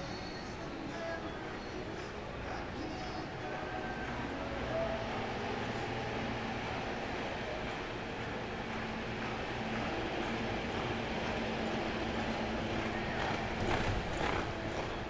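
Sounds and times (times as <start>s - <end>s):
steady hum: 0.0s - 15.0s
hoofbeats on soft dirt: 8.2s - 15.0s.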